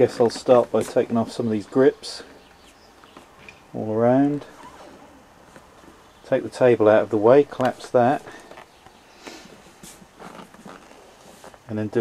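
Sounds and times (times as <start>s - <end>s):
faint rustling: 0.0s - 12.0s.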